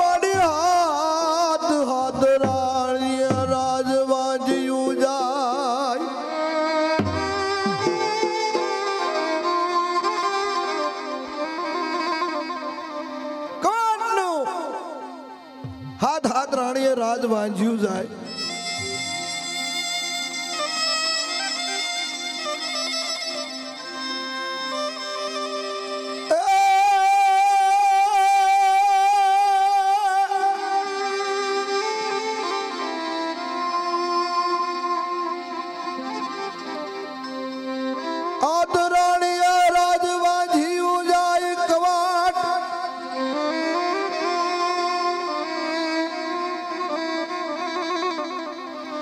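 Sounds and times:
harmonium and violin drone: 0:00.0 - 0:49.0.

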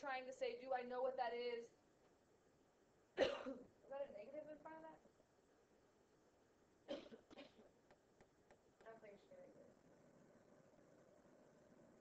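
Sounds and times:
woman coughing: 0:03.2 - 0:03.7, 0:06.9 - 0:07.8.

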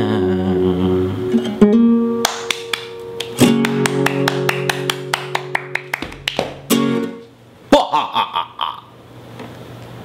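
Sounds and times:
acoustic guitar strum: 0:00.8 - 0:07.3
hand claps: 0:02.2 - 0:06.9.

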